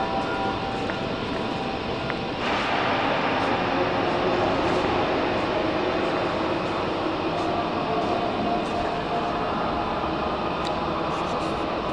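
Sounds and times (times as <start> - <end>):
constant rumble: 0.0 - 11.9
faint steady tones: 0.0 - 11.9.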